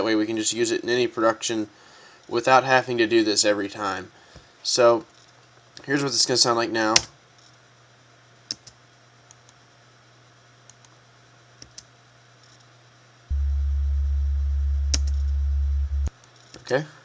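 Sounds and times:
deep sub-bass sine tone: 13.3 - 16.1.

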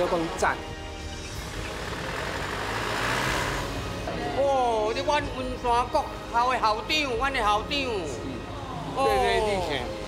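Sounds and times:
passing vehicle rush: 1.2 - 4.4.

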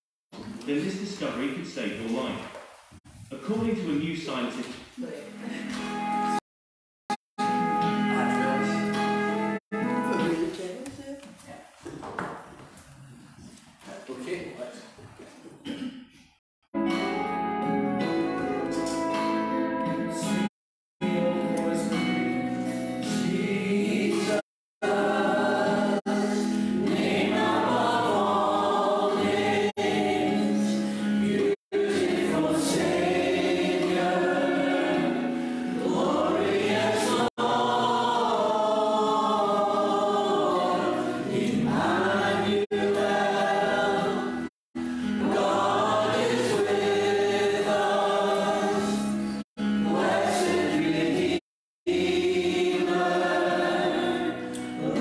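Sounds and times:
choir singing a slow hymn: 21.0 - 55.0.

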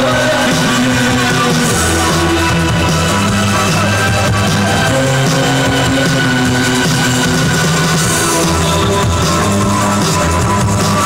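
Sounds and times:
bass guitar: 0.0 - 11.0.

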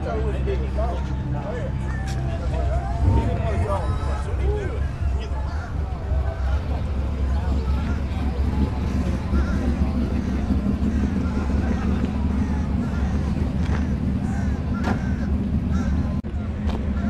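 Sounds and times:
distant voices chatting: 0.0 - 17.0
steady low rumble: 0.0 - 17.0.

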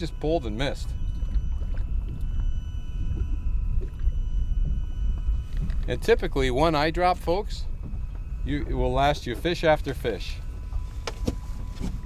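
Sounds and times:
faint whining tones: 0.0 - 12.0
low rumble of wind and water: 0.0 - 12.0.

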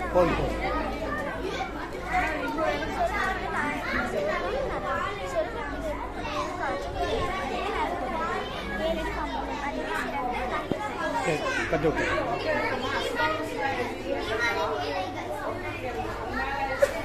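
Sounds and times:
children chattering: 0.0 - 17.0.

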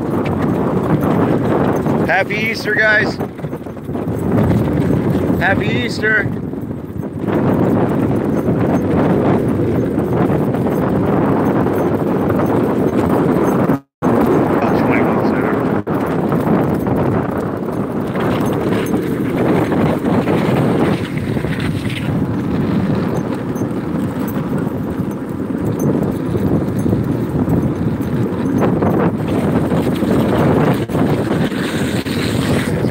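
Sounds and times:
wheels rolling over asphalt: 0.0 - 32.9
rapid rattle: 15.9 - 32.9.

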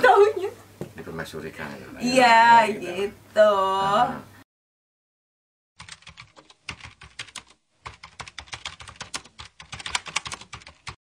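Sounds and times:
computer keyboard typing clicks: 5.8 - 11.0.

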